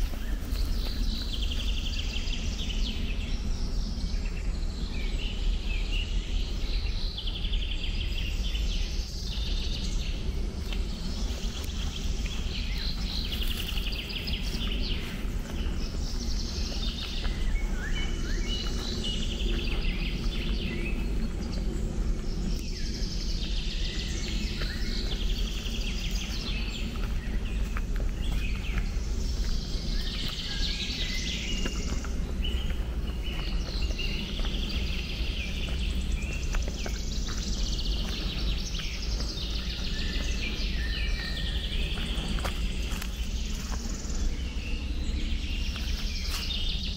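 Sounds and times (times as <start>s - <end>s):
songbirds singing: 0.0s - 46.9s
steady low rumble: 0.0s - 46.9s.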